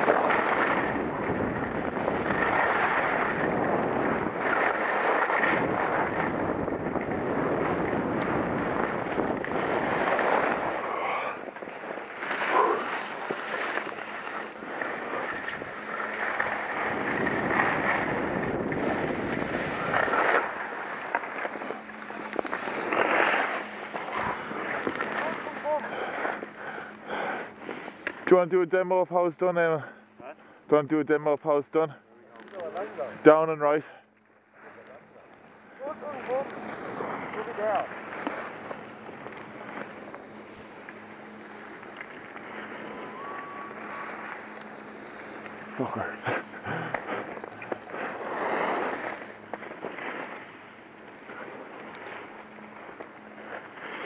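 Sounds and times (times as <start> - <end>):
wind on microphone: 0.0 - 4.7, 5.4 - 11.1, 16.7 - 20.3
skis scraping over snow: 0.0 - 30.3, 32.2 - 33.8, 34.6 - 54.0
faint voices calling out: 42.8 - 44.4.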